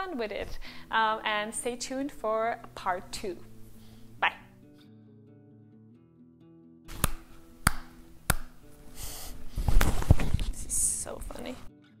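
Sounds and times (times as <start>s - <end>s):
soft background music: 0.0s - 12.0s
microphone rubbing and scraping: 9.3s - 11.4s.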